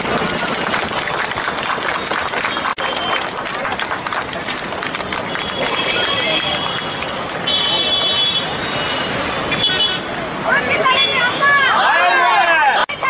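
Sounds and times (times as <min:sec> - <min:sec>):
crowd talking and calling out: 0:00.0 - 0:13.0.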